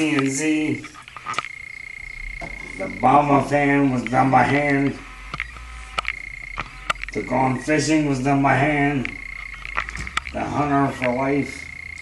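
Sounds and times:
thin high-pitched whine: 0.0s - 12.0s.

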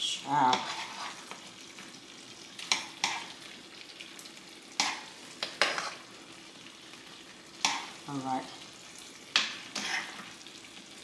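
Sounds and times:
gravy sizzling in a pan: 0.0s - 11.0s
spoon scraping a skillet: 0.2s - 3.9s, 4.6s - 8.0s, 8.8s - 10.6s.

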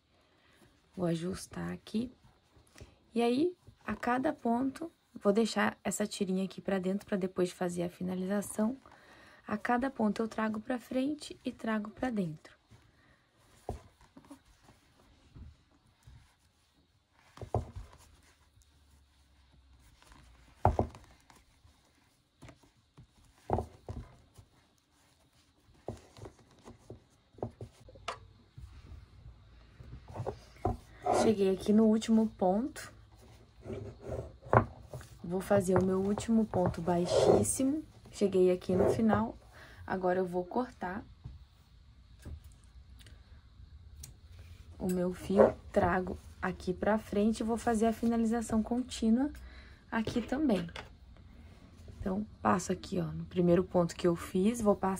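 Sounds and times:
yarn rustling through stitches: 9.5s - 40.7s, 44.3s - 48.8s.

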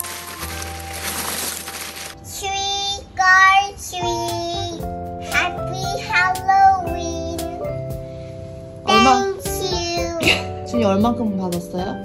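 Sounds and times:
child singing: 2.2s - 7.7s, 8.9s - 10.4s
background music with held chords: 3.5s - 12.0s.

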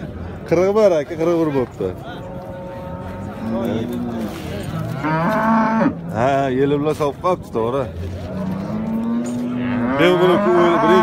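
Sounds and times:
cattle mooing: 2.3s - 6.1s, 8.2s - 11.0s.

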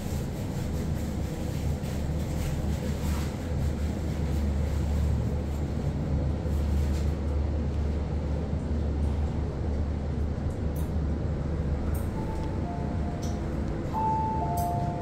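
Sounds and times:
elevator low rumble and hum: 0.0s - 15.0s.

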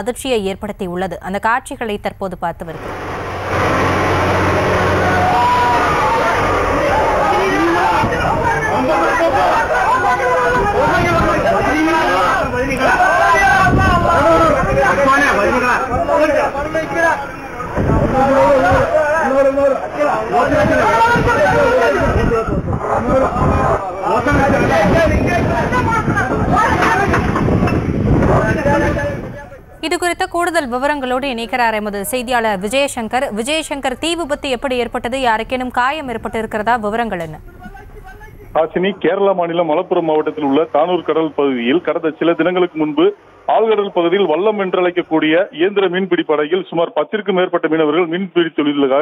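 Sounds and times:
boat engine humming: 2.1s - 38.6s
loud low rumble: 2.7s - 11.6s
wind: 2.7s - 47.1s
sea rushing: 2.8s - 29.6s
men shouting: 3.5s - 27.4s.

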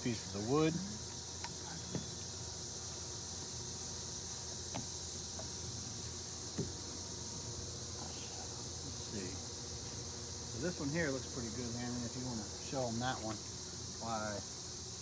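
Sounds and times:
insects droning in trees: 0.0s - 15.0s.

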